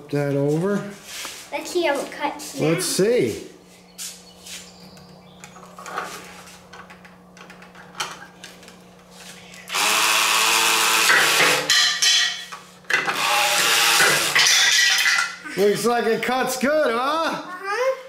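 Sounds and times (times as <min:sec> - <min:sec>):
toy saw buzzing whir: 0:09.7 - 0:11.8, 0:13.0 - 0:15.1.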